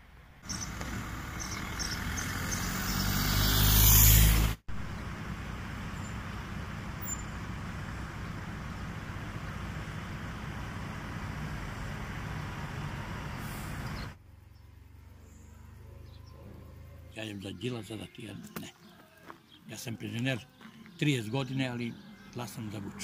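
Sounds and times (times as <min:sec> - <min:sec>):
distant traffic: 0:00.0 - 0:23.0
car passing close by: 0:00.5 - 0:14.2
lorry passing close by: 0:00.5 - 0:17.2.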